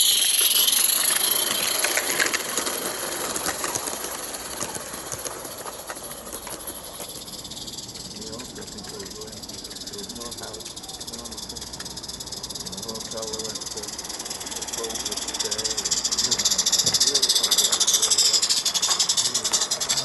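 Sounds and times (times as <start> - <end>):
steam locomotive hissing: 0.0 - 20.0
train wheels clicking on track: 0.0 - 20.0.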